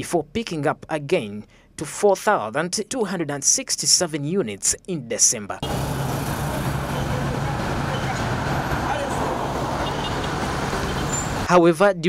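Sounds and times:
cars and motorcycles driving past: 5.6 - 11.5.

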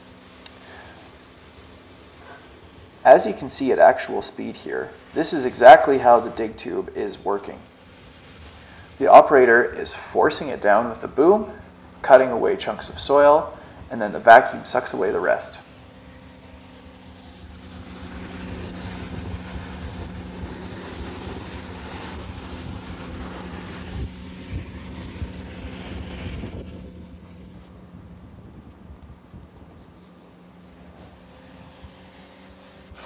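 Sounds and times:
rushing air: 0.0 - 33.0
vacuum truck suction hum: 0.0 - 33.0.

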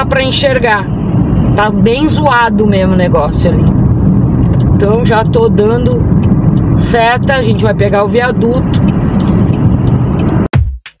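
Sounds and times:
road and engine noise inside car: 0.0 - 10.5
electronic music with heavy beat: 10.3 - 11.0.

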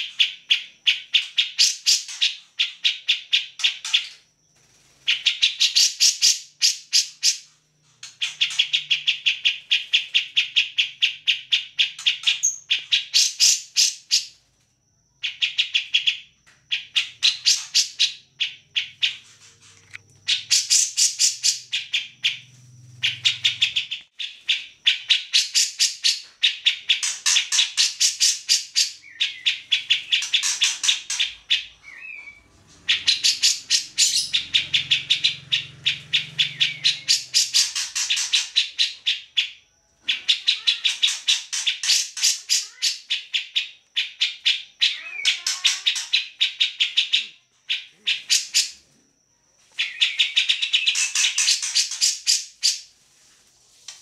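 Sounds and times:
bird singing fast repeated notes: 0.0 - 14.4, 15.1 - 48.8, 49.7 - 52.9.

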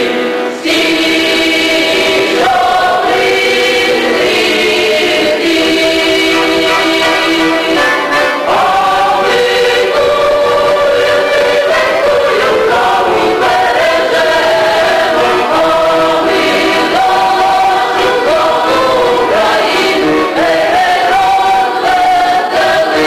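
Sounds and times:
choir singing in harmony: 0.0 - 23.0.

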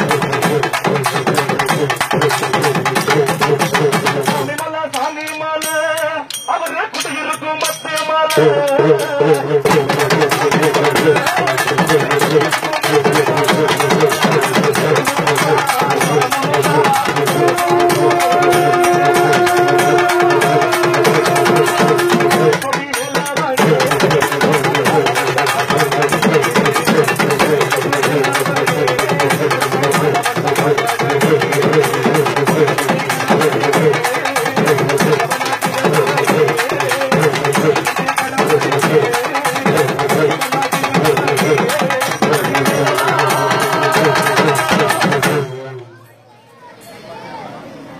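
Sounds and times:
folk drum ensemble playing: 0.0 - 5.1, 8.3 - 46.0
held pitched tone: 15.8 - 26.2, 41.2 - 46.1.

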